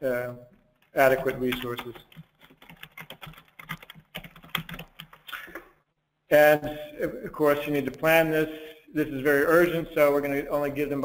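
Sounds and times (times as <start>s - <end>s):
computer keyboard typing: 0.8s - 5.6s.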